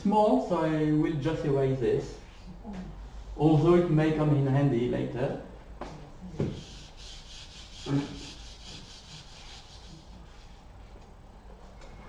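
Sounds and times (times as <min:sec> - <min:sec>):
eraser rubbing whiteboard: 0:06.4 - 0:10.7.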